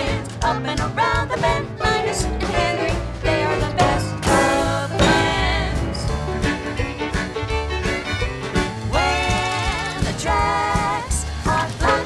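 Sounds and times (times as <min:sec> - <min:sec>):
country swing music: 0:00.0 - 0:12.0.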